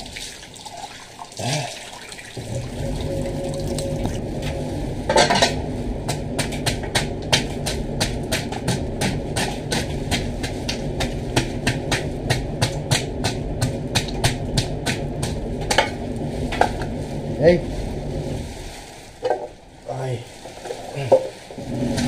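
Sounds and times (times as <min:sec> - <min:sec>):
steady low hum: 0:02.4 - 0:22.0.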